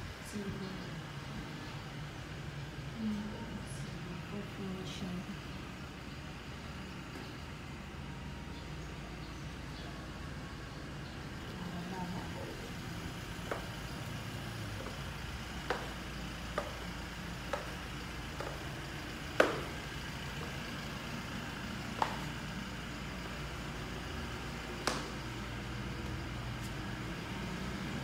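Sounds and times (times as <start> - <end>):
steady low hum: 0.0 - 28.0
footsteps on concrete and tile: 13.2 - 28.0.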